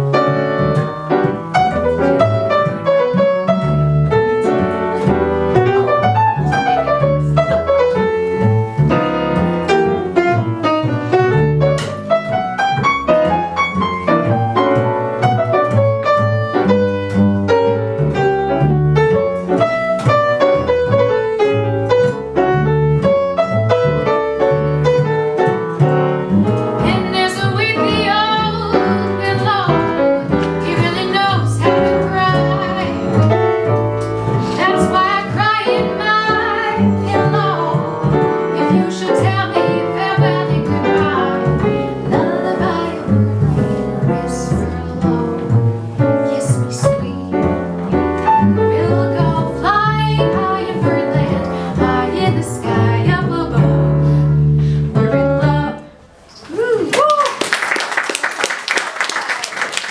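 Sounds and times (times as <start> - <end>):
plucked double bass: 0.0 - 56.0
piano: 0.0 - 59.9
woman singing jazz: 26.7 - 56.0.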